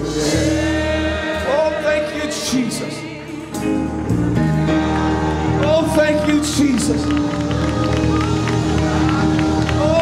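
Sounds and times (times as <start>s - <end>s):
gospel church music: 0.0s - 10.0s.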